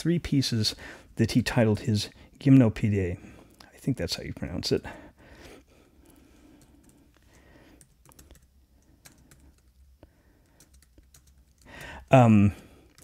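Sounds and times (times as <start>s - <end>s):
low steady hum: 0.0s - 13.0s
keyboard typing clicks: 7.8s - 11.7s.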